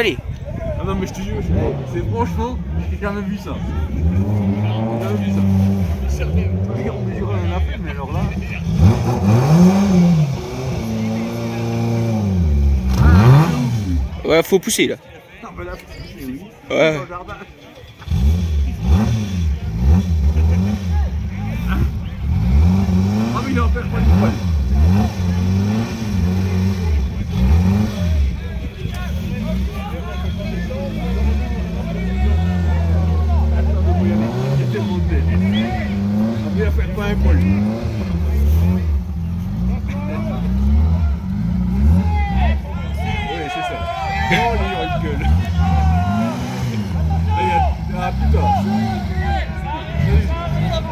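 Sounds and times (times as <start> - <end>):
car engine revving: 0.9 - 14.5, 18.0 - 50.9.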